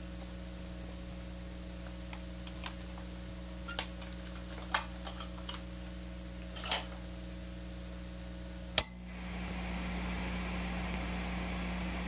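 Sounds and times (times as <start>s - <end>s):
guitar amp mains hum and hiss: 0.0s - 12.0s.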